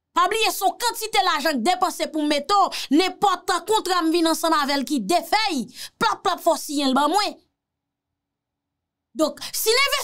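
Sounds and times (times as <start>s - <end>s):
woman speaking: 0.1s - 7.5s, 9.2s - 10.0s.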